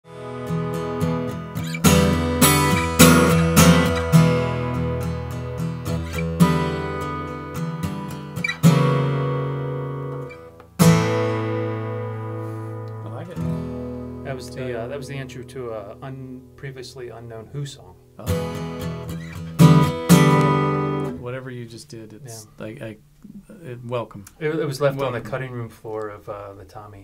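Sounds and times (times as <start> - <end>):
acoustic guitar picked and strummed: 0.0 - 21.3.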